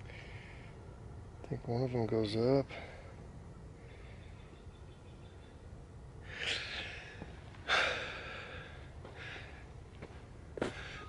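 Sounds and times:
breathy exhale: 0:06.2 - 0:09.6.

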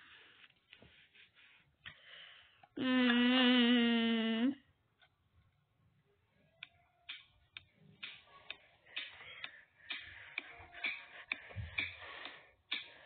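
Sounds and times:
thin faint beat from small speaker: 0:06.5 - 0:13.0.

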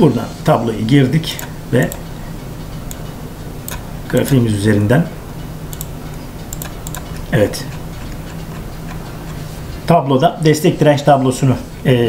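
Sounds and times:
steady background hiss: 0:00.0 - 0:12.0
computer mouse clicks: 0:02.9 - 0:03.1, 0:03.7 - 0:04.4, 0:05.7 - 0:09.4.

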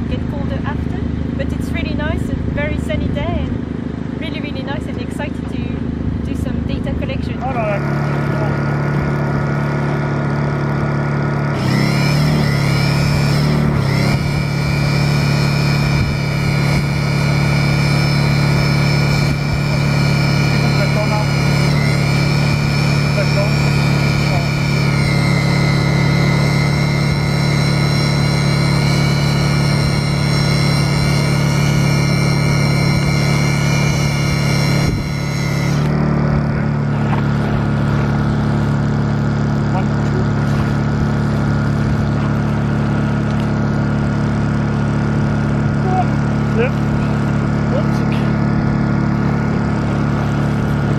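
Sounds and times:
steady low hum: 0:00.0 - 0:50.9
electric drill motor whine: 0:06.8 - 0:50.9.

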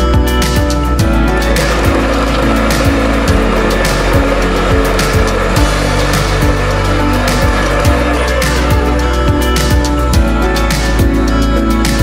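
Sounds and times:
background music with steady beat: 0:00.0 - 0:12.0
sewing machine whirring: 0:01.3 - 0:09.2.

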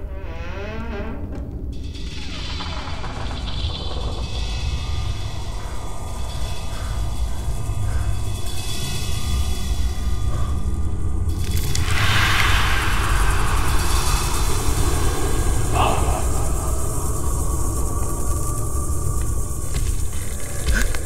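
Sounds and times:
low rumbling drone: 0:01.7 - 0:21.0
hissing crash-like swell: 0:11.7 - 0:19.0.

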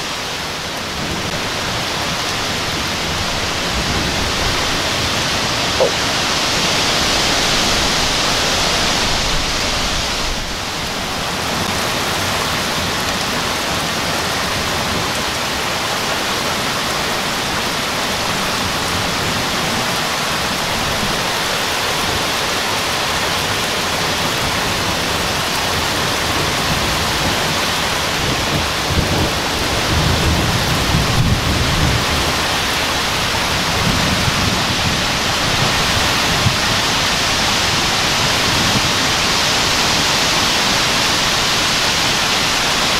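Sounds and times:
heavy rain: 0:00.0 - 0:42.9
strong wind through trees: 0:00.0 - 0:42.9.

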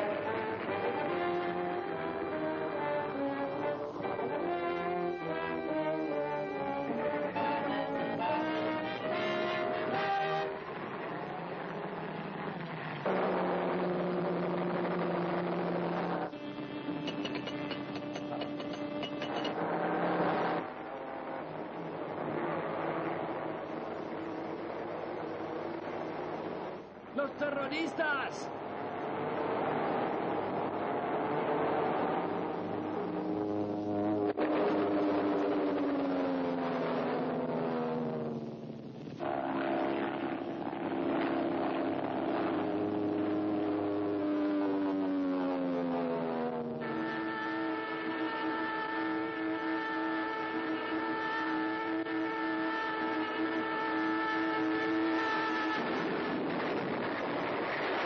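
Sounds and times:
brass music: 0:00.0 - 0:10.9, 0:16.0 - 0:19.6, 0:46.8 - 0:58.0
cartoon rocket engine roar: 0:28.8 - 0:58.0.

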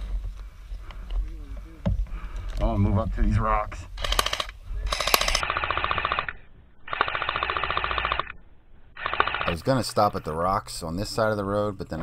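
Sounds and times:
airsoft rifle full-auto bursts: 0:04.0 - 0:08.4, 0:09.0 - 0:10.0.

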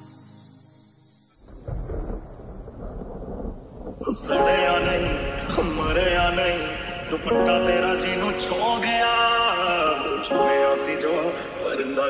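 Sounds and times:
thunder rumbling: 0:01.5 - 0:10.3.

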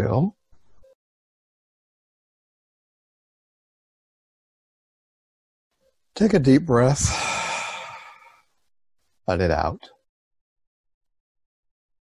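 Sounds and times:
deep breath: 0:06.9 - 0:08.5.

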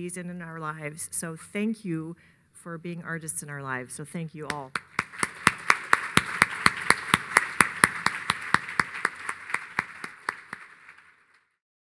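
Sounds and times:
sharp close claps: 0:04.5 - 0:11.4
audience applauding: 0:04.7 - 0:11.5.

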